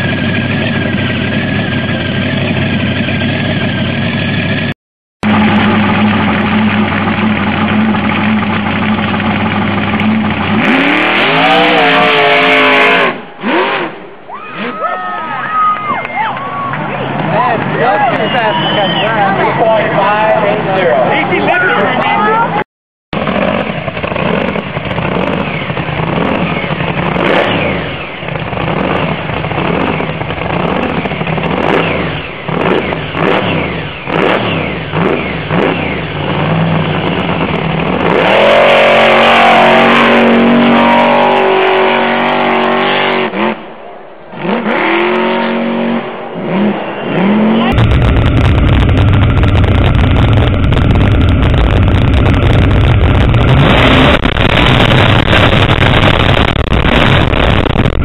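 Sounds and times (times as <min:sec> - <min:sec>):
truck engine revving: 0:00.0 - 0:14.7, 0:16.8 - 0:58.0
deep engine rumble: 0:00.0 - 0:14.8, 0:15.4 - 0:58.0.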